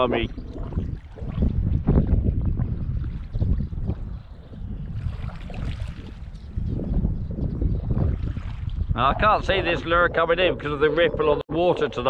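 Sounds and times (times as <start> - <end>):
wind buffeting the microphone: 0.0 - 12.0.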